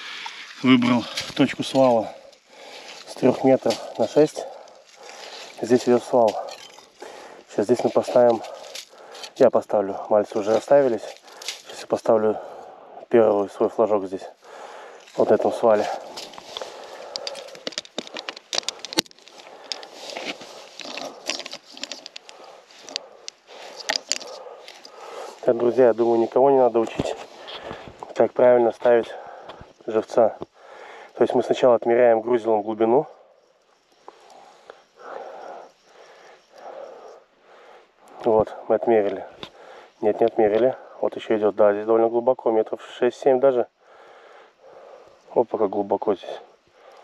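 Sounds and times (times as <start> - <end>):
person breathing: 0.0 - 1.4, 2.0 - 3.1, 3.8 - 5.6, 6.3 - 7.5, 8.3 - 9.4, 11.1 - 11.7, 12.3 - 13.1, 14.3 - 25.6, 27.1 - 28.0, 29.1 - 29.8, 30.4 - 31.2, 33.2 - 38.2, 39.5 - 40.0, 43.8 - 45.3, 46.5 - 47.0
ice fishing gear clicks and crackles: 0.1 - 9.5, 10.2 - 11.8, 15.0 - 25.3.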